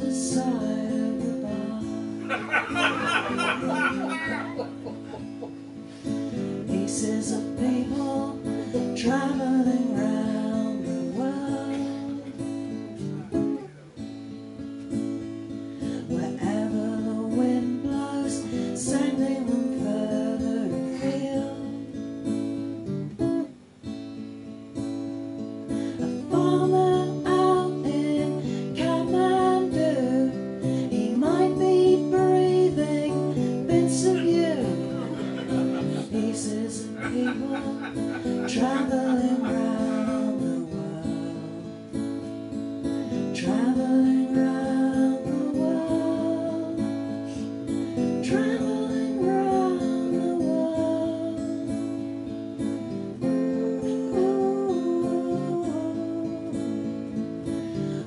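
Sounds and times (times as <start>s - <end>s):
woman singing: 0.0s - 13.5s, 15.8s - 23.5s, 25.7s - 58.0s
acoustic guitar strummed: 0.0s - 58.0s.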